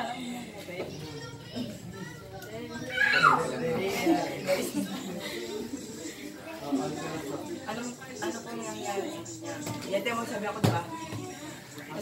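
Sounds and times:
music playing: 3.4s - 12.0s.

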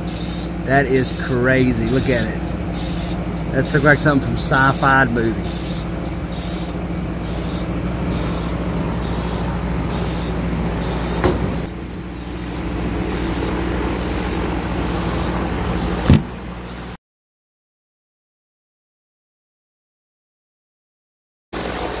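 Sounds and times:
pulsing high hiss: 0.0s - 11.4s, 12.1s - 16.1s
laser engraver humming: 0.0s - 17.0s
short knock: 16.1s - 16.3s.

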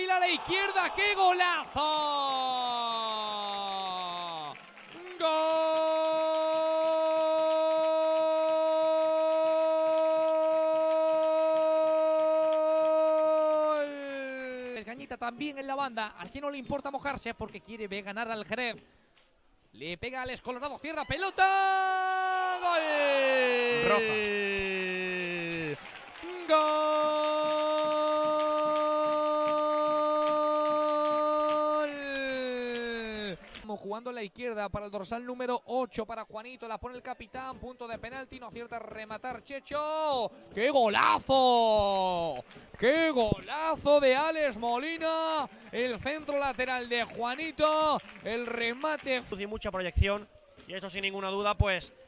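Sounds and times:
commentator shouting goal: 0.0s - 14.9s, 20.7s - 33.4s.

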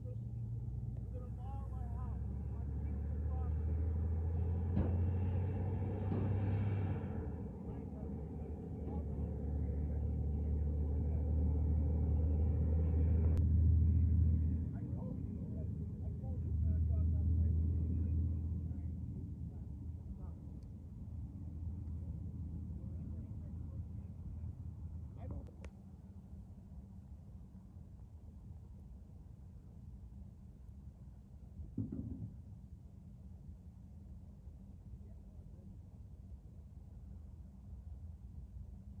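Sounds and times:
low steady rumble: 0.0s - 39.0s.

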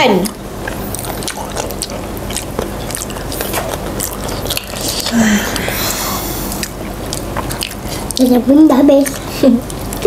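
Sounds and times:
low steady hum: 0.0s - 10.0s
wet chewing and lip smacking: 0.0s - 10.0s.

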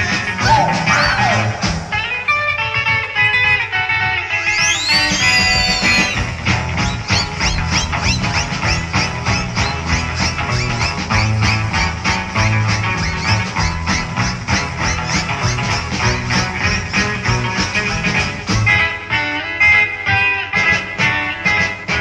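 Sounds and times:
rock music electric guitar: 0.0s - 22.0s.

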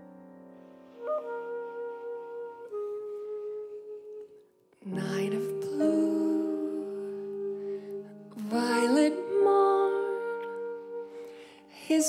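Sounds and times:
clarinet notes: 0.0s - 12.0s.

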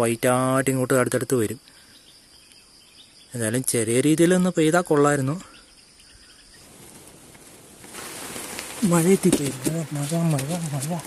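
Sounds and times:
soft even hiss: 6.0s - 11.0s
man speaking: 8.8s - 11.0s.

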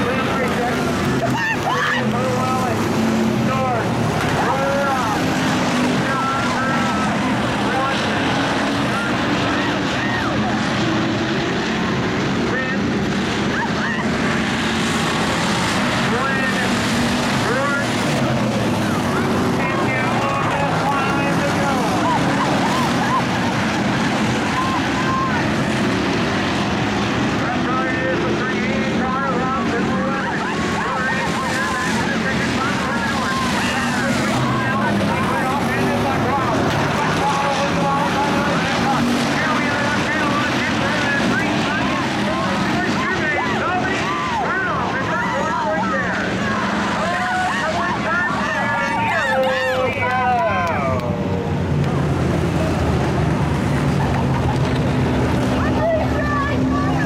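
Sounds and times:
race car engines revving: 0.0s - 57.0s
voices: 0.0s - 57.0s.

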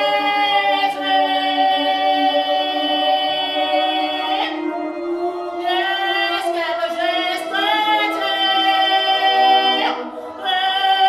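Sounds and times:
woman singing long notes: 5.5s - 11.0s.

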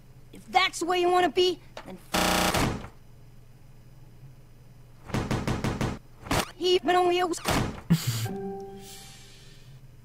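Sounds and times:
low hum: 7.8s - 10.0s.

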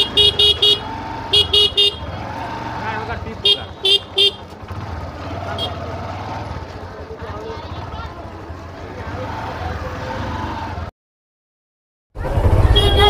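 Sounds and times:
vehicle horn short beeps: 0.0s - 2.2s, 3.5s - 4.4s, 5.5s - 5.8s, 12.7s - 13.0s
crowd chatter: 3.4s - 10.8s.

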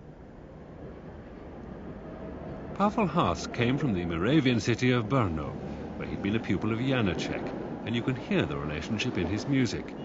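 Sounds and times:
low hum of traffic: 0.0s - 10.0s.

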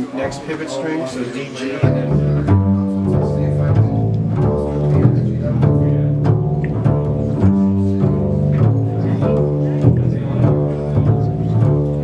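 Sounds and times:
double basses plucked pizzicato: 1.6s - 12.0s.

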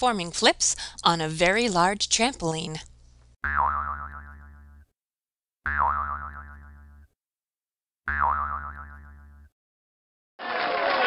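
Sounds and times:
cartoon boing spring effect: 3.4s - 4.9s, 5.7s - 7.1s, 8.1s - 9.5s.

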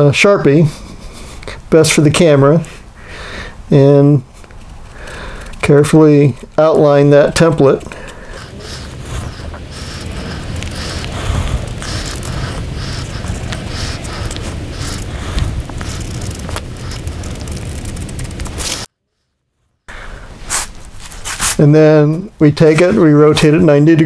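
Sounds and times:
marker scratching on paper: 6.6s - 18.9s
low rumble: 8.3s - 18.9s.

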